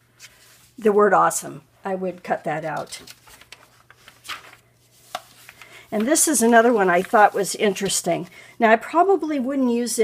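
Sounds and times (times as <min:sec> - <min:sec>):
magazine pages turning: 0:02.6 - 0:08.3.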